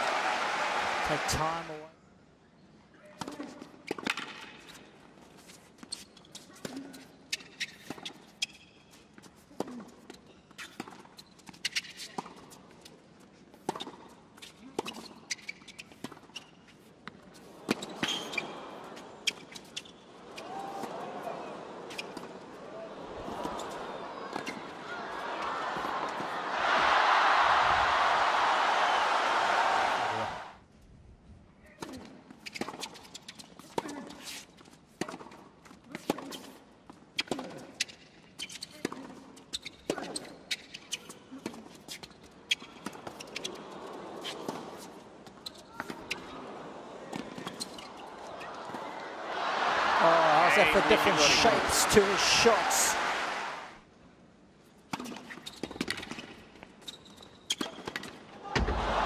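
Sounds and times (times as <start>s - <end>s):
crowd applauding and cheering: 0.0s - 1.8s, 26.4s - 30.6s, 49.2s - 53.8s, 58.7s - 59.0s.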